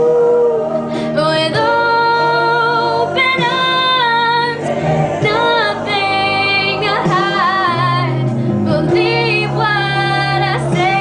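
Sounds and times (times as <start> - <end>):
karaoke backing track: 0.0 - 11.0
woman singing a slow ballad: 0.0 - 11.0.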